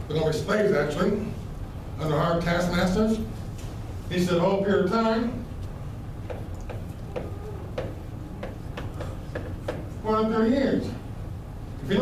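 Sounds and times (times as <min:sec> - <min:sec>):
chalk tapping on chalkboard: 0:06.2 - 0:10.0.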